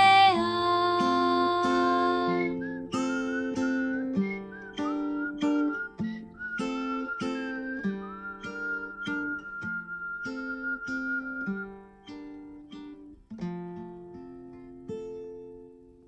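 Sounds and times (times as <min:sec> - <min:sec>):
acoustic guitar picked and strummed: 0:00.0 - 0:16.0
whistled melody: 0:01.6 - 0:13.0.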